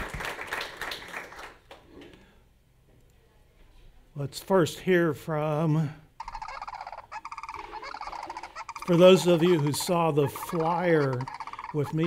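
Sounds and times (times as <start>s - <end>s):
cranes calling over loudspeakers: 6.2s - 12.0s.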